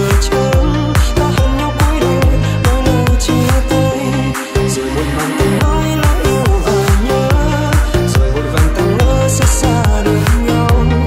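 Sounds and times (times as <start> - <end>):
melodic synth lead: 0.0 - 11.0
pulsing bass: 0.0 - 11.0
kick drum: 0.1 - 3.8, 5.6 - 11.0.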